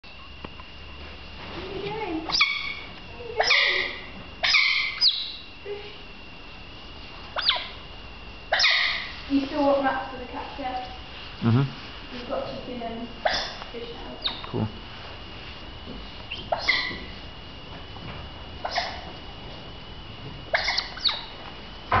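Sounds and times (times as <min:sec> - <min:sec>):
otters squeaky calls: 0:02.3 - 0:05.5, 0:07.3 - 0:07.8, 0:08.5 - 0:09.2, 0:13.2 - 0:14.5, 0:16.3 - 0:17.2, 0:18.6 - 0:19.1, 0:20.5 - 0:21.4.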